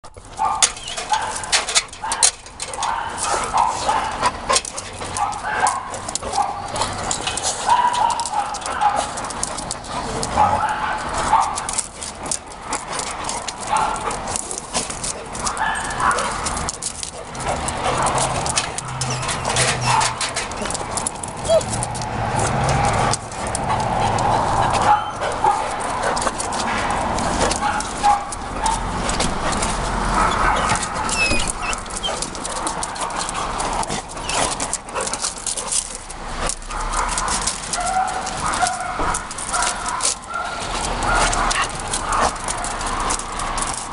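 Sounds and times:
dogs barking and yipping: 0.1 - 43.9.

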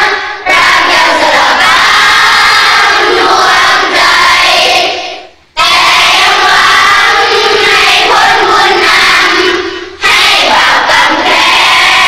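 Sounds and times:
children singing in chorus: 0.0 - 12.0.

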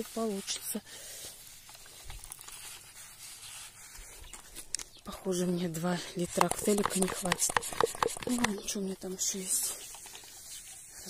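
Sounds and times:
garden sprayer hissing: 0.0 - 3.8, 5.4 - 11.0.

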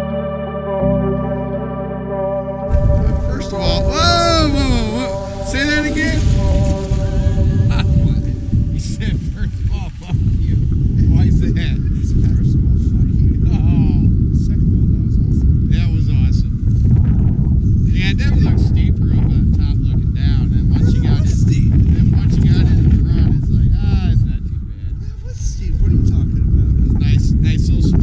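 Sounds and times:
loud wind rumble: 2.7 - 28.0.

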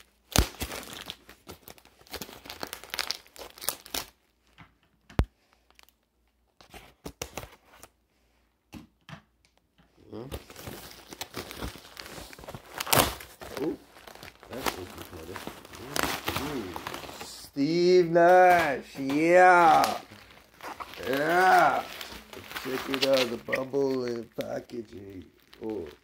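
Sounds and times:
tape tearing and crinkling: 0.2 - 4.2, 10.3 - 26.0
packaging rustling: 0.3 - 4.2, 10.4 - 26.0.

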